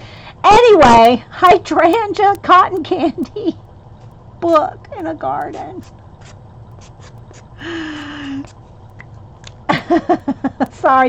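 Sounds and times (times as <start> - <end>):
faint ticks: 0.0 - 11.0.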